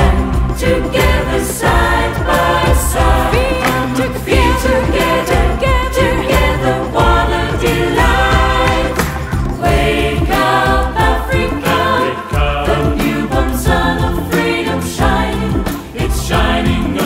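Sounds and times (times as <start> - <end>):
choir singing in parts: 0.0 - 17.0.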